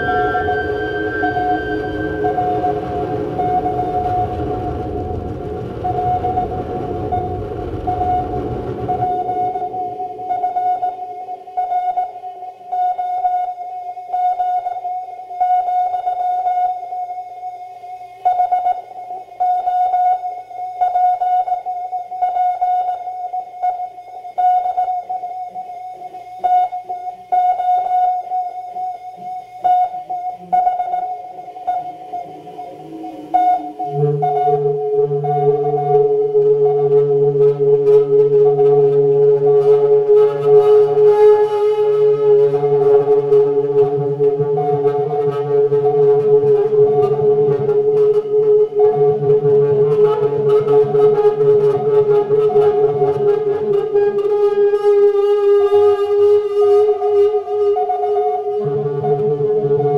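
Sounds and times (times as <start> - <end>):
stuttering electronic pulse: 0.0 - 10.9
high electronic tone: 0.0 - 11.4, 30.3 - 50.5
low electronic drone: 0.0 - 11.6, 30.4 - 54.4.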